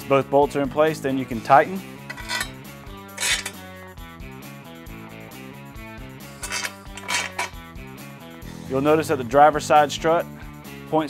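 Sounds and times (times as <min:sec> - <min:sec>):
metallic clinks of bolts: 0:02.1 - 0:02.6, 0:06.4 - 0:07.6.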